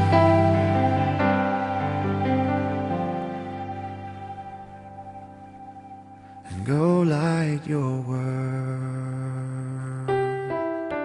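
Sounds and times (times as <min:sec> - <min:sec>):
person singing a low note: 0:06.4 - 0:10.9.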